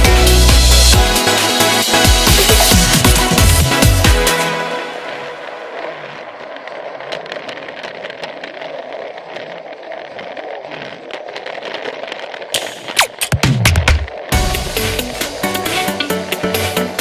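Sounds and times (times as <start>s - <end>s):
wheels clicking on track: 0.0s - 17.0s
toy train motor whirring: 5.6s - 13.2s.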